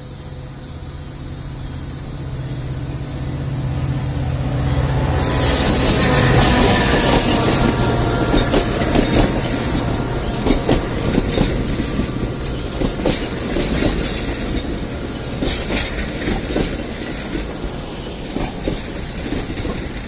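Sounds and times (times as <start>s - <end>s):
passenger train passing: 0.0s - 20.0s
train wheels clicking over rail joints: 5.2s - 20.0s.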